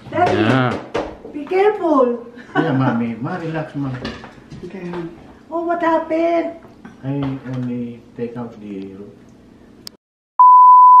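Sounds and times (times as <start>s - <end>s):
steady test-tone beep: 10.4s - 11.0s.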